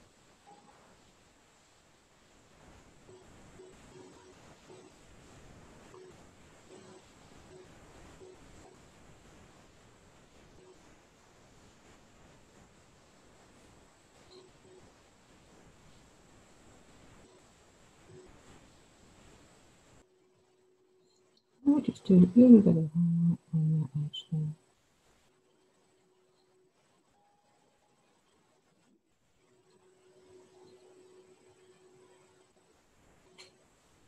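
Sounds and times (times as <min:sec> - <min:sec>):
faint low tones: 0:20.0 - 0:24.7.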